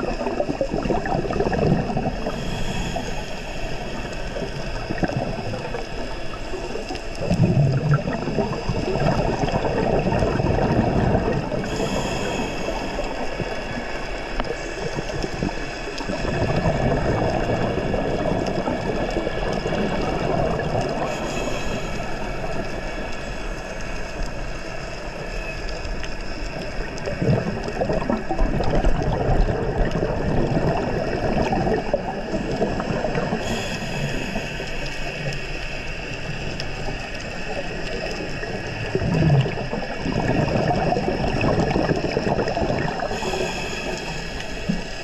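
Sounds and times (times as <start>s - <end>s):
faint steady high hum: 0.0s - 45.0s
underwater bubbles gurgling: 0.0s - 45.0s.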